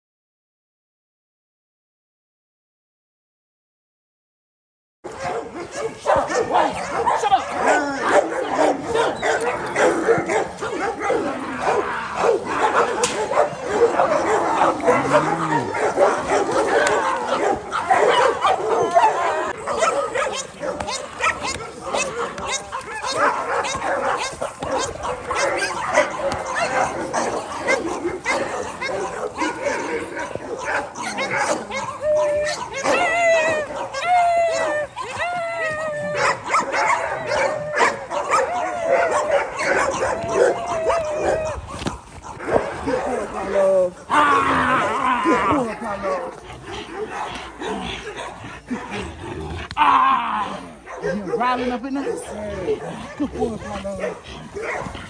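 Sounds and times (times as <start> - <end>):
dog barking: 5.1 - 49.1, 50.7 - 55.0
people's voices: 5.2 - 55.0.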